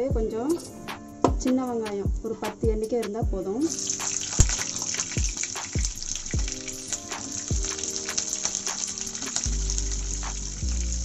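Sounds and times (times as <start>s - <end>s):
background music with beat: 0.0s - 11.0s
shallots sizzling in oil: 3.7s - 11.0s.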